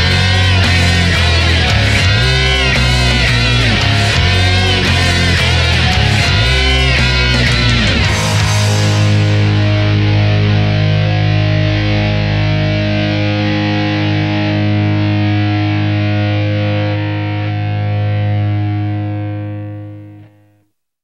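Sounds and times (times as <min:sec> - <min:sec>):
distorted electric guitar chord: 0:00.0 - 0:20.6.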